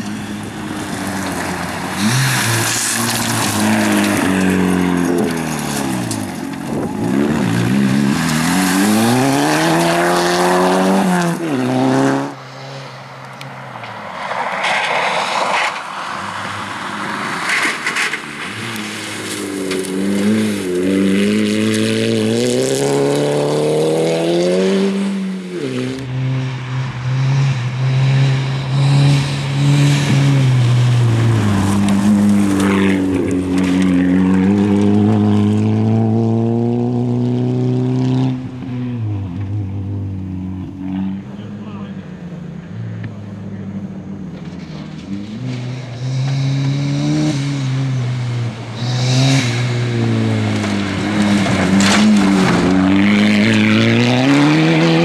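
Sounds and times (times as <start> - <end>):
rally car engine revving: 0.0 - 55.0.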